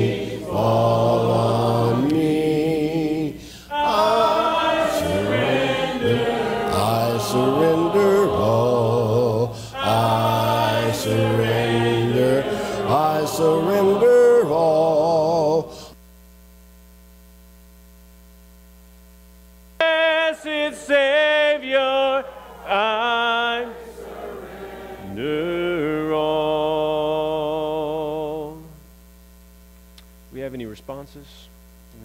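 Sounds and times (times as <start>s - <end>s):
people singing a hymn: 0.0s - 16.0s, 19.8s - 28.7s
steady electrical hum: 0.0s - 32.0s
faint click: 29.8s - 30.2s.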